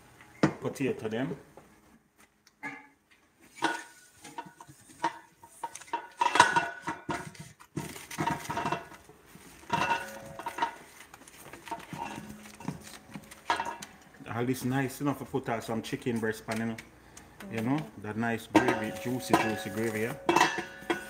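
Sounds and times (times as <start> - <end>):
metal tongs scraping sheet pan: 18.6 - 21.0.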